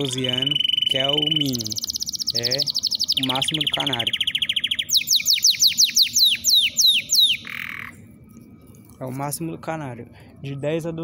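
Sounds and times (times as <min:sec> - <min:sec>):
canary singing: 0:00.0 - 0:09.3.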